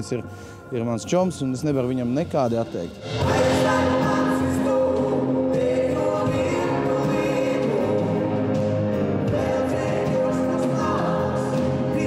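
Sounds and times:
voices singing along: 3.0s - 12.0s
man singing into a microphone: 3.2s - 8.6s, 9.2s - 12.0s.

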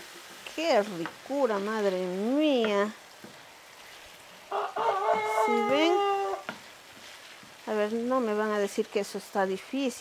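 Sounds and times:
rooster crowing: 4.5s - 6.5s.

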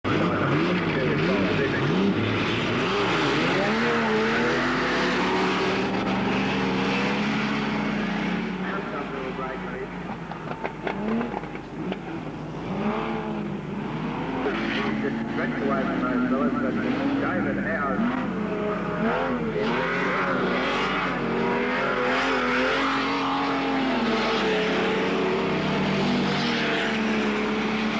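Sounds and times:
race car engines revving: 0.0s - 27.9s.

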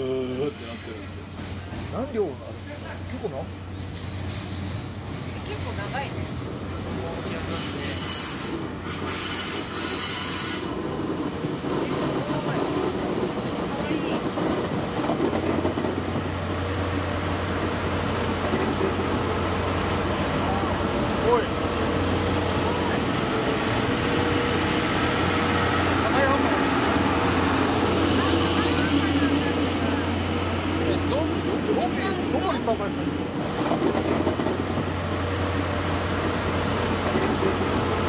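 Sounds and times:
wheels rumbling on rails: 0.0s - 38.0s
locomotive engine drone: 16.0s - 38.0s.

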